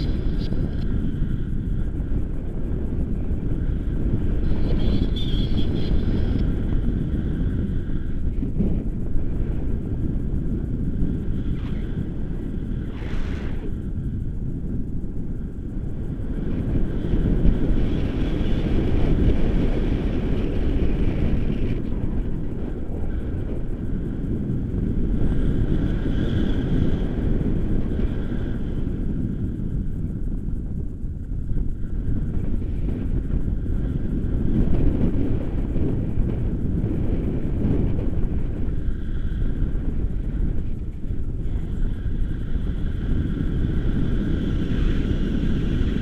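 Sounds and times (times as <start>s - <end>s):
wind rumble on microphone: 0.0s - 46.0s.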